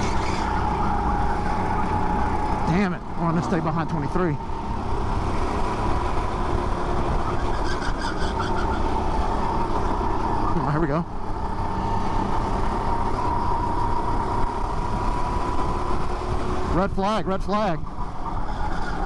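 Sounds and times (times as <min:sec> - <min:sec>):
go-kart engine racing: 0:00.0 - 0:19.0
other karts on track: 0:00.0 - 0:19.0.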